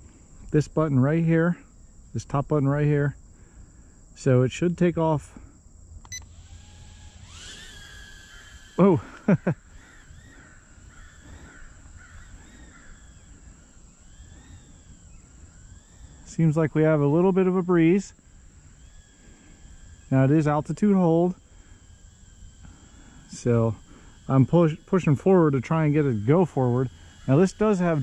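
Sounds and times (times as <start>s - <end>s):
drone motors whining: 6.0s - 28.0s.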